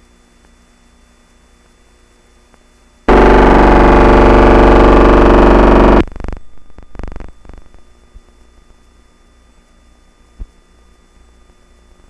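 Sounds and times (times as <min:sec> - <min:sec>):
film soundtrack hum and hiss: 0:00.0 - 0:12.0
loud distorted buzzing blare: 0:03.1 - 0:07.8.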